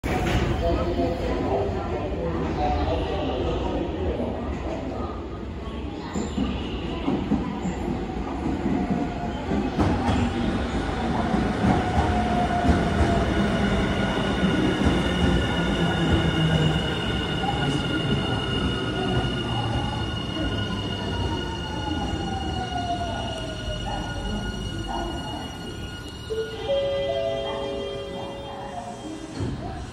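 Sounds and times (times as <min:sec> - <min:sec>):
train wheels rumbling on rail: 0:06.2 - 0:25.9.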